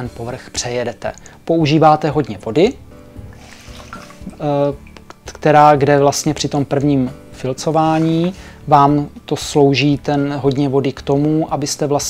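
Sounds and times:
water sloshing and dripping: 0:03.2 - 0:05.4, 0:07.6 - 0:08.6
sponge dunked in water: 0:03.4 - 0:05.0.

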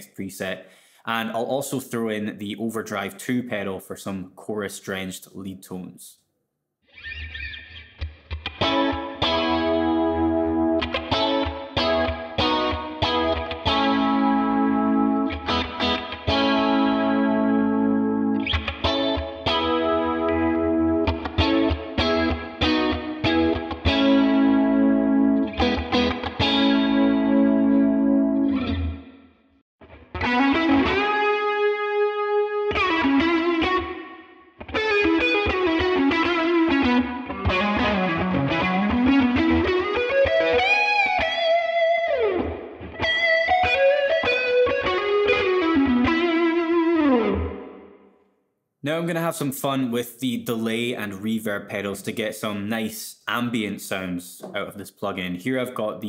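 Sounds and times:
electric guitar lead line: 0:06.9 - 0:48.0
electric guitar strummed chords: 0:08.0 - 0:29.2, 0:29.8 - 0:47.8.

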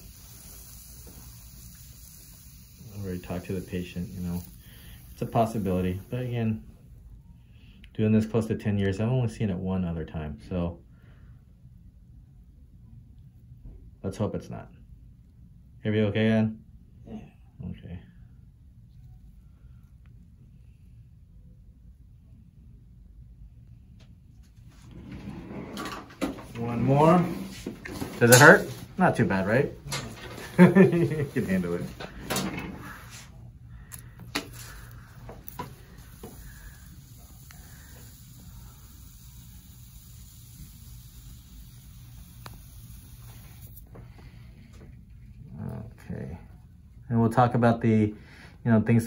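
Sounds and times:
faint background hiss: 0:12.3 - 0:49.0.

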